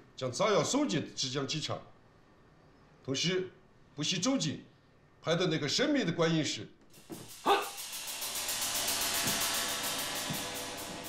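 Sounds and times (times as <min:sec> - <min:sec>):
rapid high-pitched pulse: 0:07.0 - 0:11.0
sharp swooping hit: 0:07.0 - 0:11.0.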